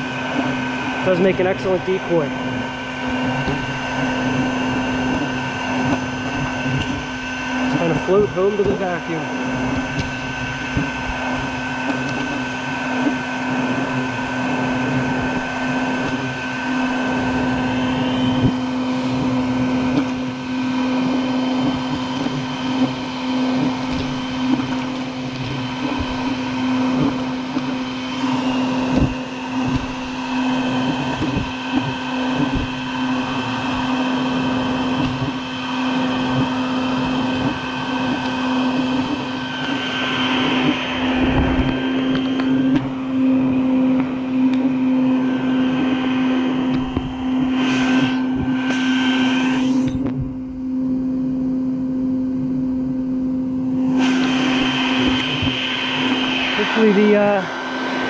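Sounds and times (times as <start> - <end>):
vacuum motor droning: 0.0 - 58.0.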